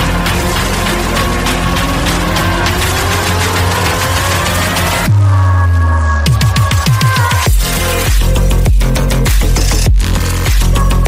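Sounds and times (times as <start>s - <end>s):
rising tone: 0.0s - 8.1s
electronic music with fast beat: 0.0s - 11.0s.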